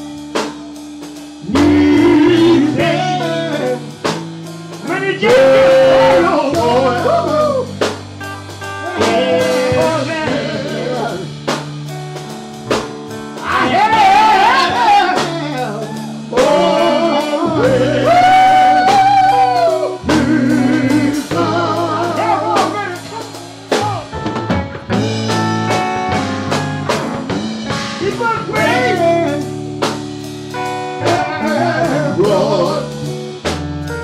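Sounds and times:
drum kit: 0:00.0 - 0:34.0
electric guitar: 0:00.0 - 0:34.0
wordless singing: 0:01.4 - 0:07.9, 0:08.8 - 0:11.7, 0:13.3 - 0:24.1, 0:27.8 - 0:30.0, 0:30.9 - 0:33.6.

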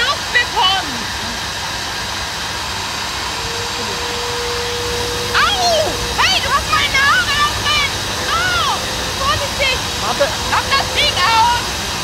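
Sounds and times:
hair dryer and vacuum rushing: 0:00.0 - 0:12.0
steady motor whine: 0:00.0 - 0:12.0.

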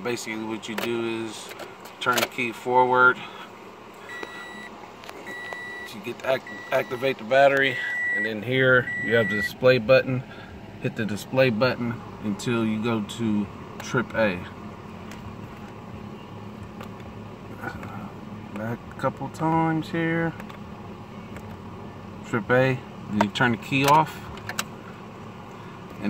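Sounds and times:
low hum in car cabin: 0:00.0 - 0:26.0
high warning beep: 0:04.0 - 0:07.2, 0:07.8 - 0:09.6.

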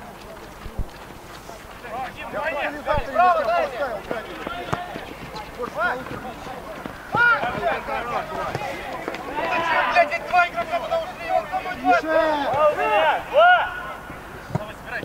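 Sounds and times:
players shouting: 0:01.8 - 0:15.0.

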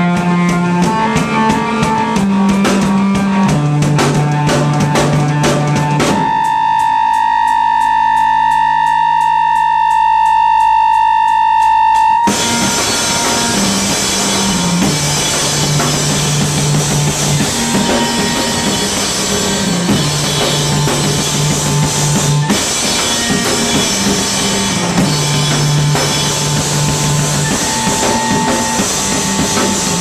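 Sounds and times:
drum kit crashing: 0:00.0 - 0:30.0
low keyboard bass line: 0:00.0 - 0:30.0.

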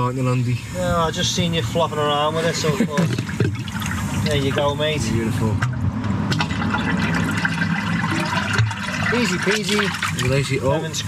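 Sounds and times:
wastewater draining through channels: 0:02.4 - 0:05.7, 0:06.3 - 0:11.0.

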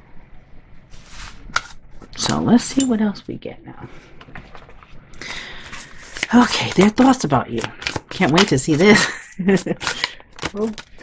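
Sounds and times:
cards shuffling: 0:04.2 - 0:11.0.

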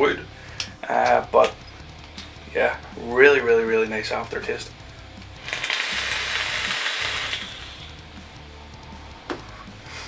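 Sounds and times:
coil sizzling: 0:05.4 - 0:08.4
air hissing through atomizer: 0:05.4 - 0:09.0.

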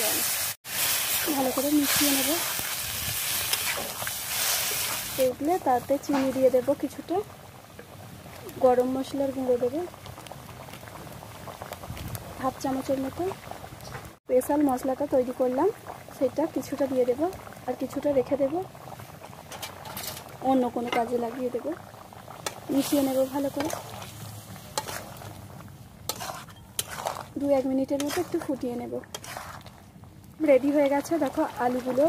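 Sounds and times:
curry bubbling: 0:00.0 - 0:32.0
spatula stirring: 0:22.4 - 0:25.3, 0:26.1 - 0:29.8
spatula scraping a metal pan: 0:24.8 - 0:25.1, 0:26.1 - 0:27.3, 0:27.9 - 0:28.5, 0:29.1 - 0:29.7.

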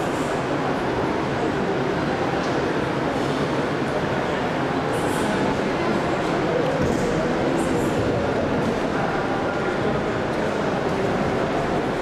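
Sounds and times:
murmur of crowd in hall: 0:00.0 - 0:12.0.

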